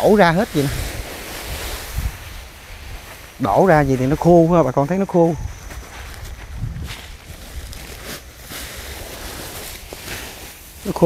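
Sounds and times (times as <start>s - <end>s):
rice husks spilling onto a tarp: 0.0s - 11.0s
sack rustling: 0.0s - 11.0s.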